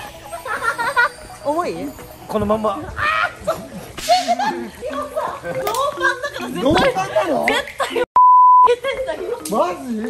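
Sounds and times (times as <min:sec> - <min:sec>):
censor bleep: 0:08.2 - 0:08.7.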